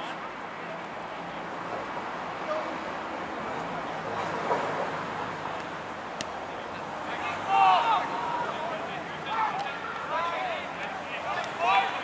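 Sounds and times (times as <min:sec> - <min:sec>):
outdoor background noise: 0:00.0 - 0:12.0
distant shouts of players: 0:06.7 - 0:12.0.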